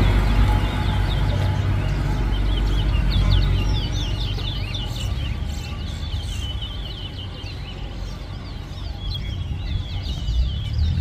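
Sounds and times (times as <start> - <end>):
finch singing twittering song: 0.0 - 11.0.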